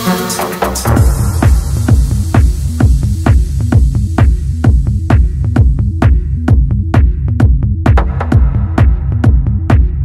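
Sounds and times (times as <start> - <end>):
throbbing low bassline: 0.0 - 10.0
techno kick drum: 0.4 - 10.0.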